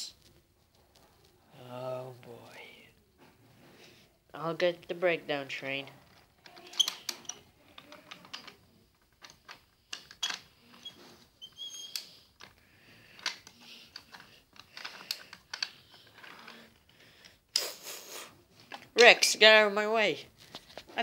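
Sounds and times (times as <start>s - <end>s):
toy trains clicking on wooden track: 6.0s - 17.8s.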